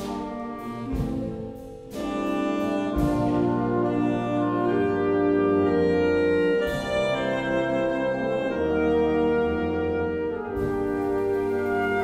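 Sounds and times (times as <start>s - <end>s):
orchestra with saxophones chords: 0.0s - 12.0s.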